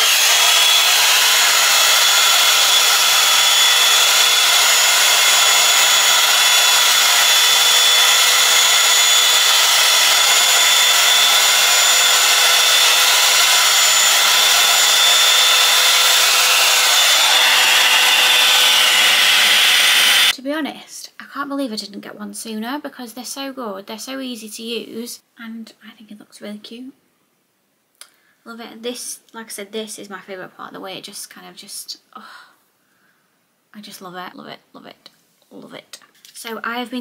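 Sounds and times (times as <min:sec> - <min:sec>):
hot-air brush blowing air: 0:00.0 - 0:20.3.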